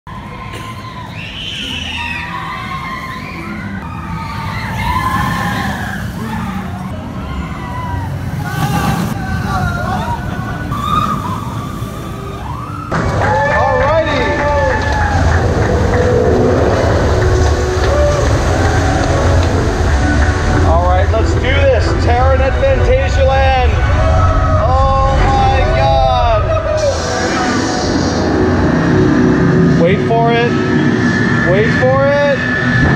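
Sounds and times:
voices: 0.3 - 12.6
background music: 2.2 - 32.9
low rumble: 2.4 - 32.9.

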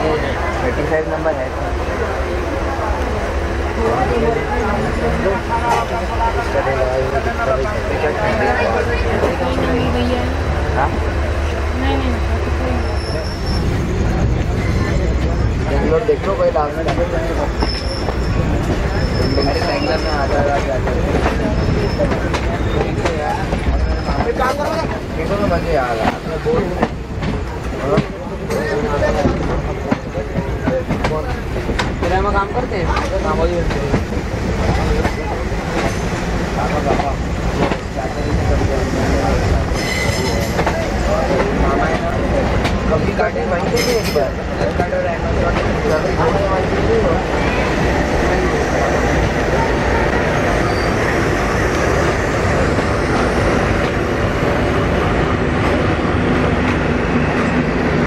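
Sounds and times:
train wheels rumbling: 0.0 - 58.0
voices chattering: 0.0 - 58.0
high wheel squeal: 12.7 - 15.5, 17.5 - 20.6, 21.4 - 23.0, 39.7 - 40.6, 50.3 - 51.2.

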